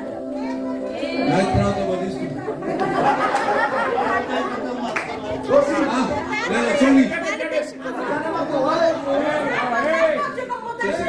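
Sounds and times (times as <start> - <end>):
overlapping chatter in a hall: 0.0 - 11.0.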